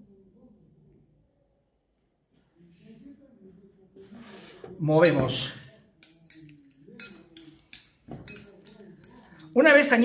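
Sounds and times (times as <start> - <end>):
metal spoon scraping glass bowl: 4.3 - 9.3.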